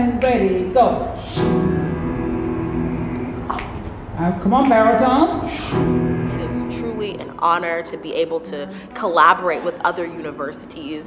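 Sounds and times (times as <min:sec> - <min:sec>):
choir holding sustained chord: 0:01.2 - 0:03.4, 0:05.5 - 0:08.8.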